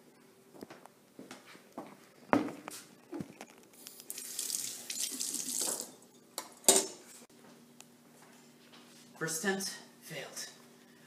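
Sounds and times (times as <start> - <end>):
faucet running water into sink: 4.1 - 5.9.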